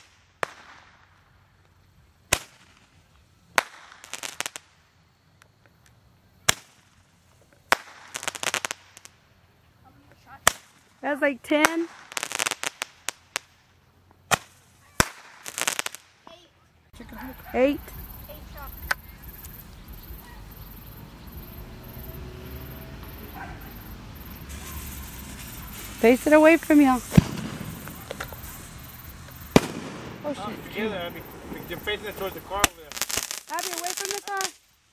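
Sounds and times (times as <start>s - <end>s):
faint firework pops: 0.0s - 4.8s, 5.4s - 9.2s, 10.1s - 10.9s, 14.2s - 16.4s, 18.6s - 19.9s, 26.7s - 30.5s
firework bangs: 0.0s - 16.3s, 17.6s - 34.9s
firework crackling: 0.0s - 34.9s
firework bang: 2.3s - 4.8s, 14.3s - 16.1s, 23.0s - 34.6s.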